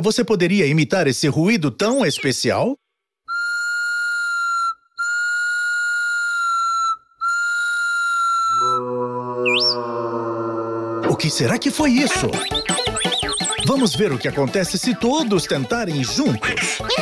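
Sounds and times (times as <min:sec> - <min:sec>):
high whistle-like peeps: 0:03.3 - 0:08.8, 0:09.4 - 0:09.8, 0:11.7 - 0:14.2
rising and falling whistle swoop: 0:03.3 - 0:08.8, 0:09.4 - 0:10.0, 0:11.7 - 0:13.8
low sustained tone: 0:08.5 - 0:11.6.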